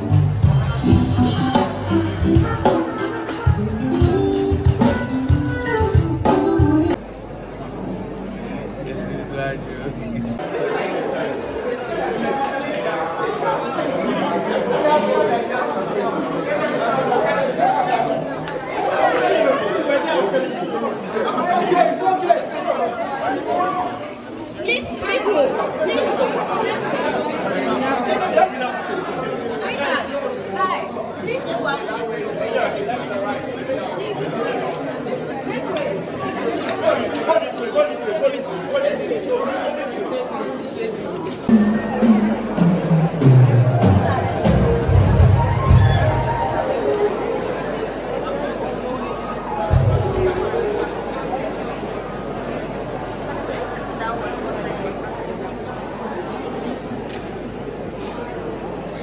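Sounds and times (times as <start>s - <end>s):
crowd chatter: 0.0s - 59.0s.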